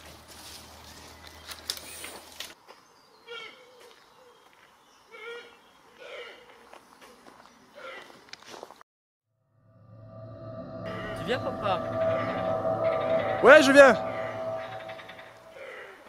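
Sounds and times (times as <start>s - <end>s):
low hum: 9.4s - 15.6s.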